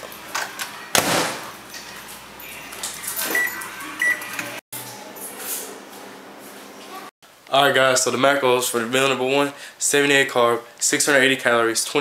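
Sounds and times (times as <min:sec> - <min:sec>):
microwave beeps: 0:03.3 - 0:04.4.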